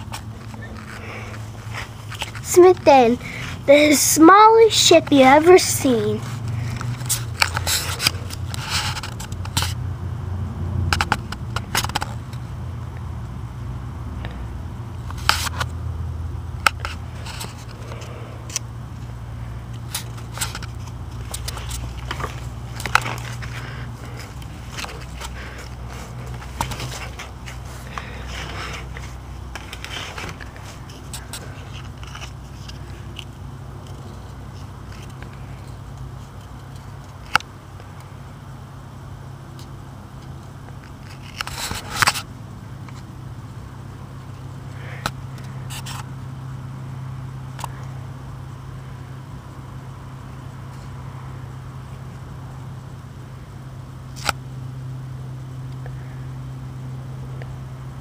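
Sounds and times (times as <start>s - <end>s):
scrapes: 0.0s - 9.8s, 19.8s - 33.0s
steady low hum: 0.0s - 58.0s.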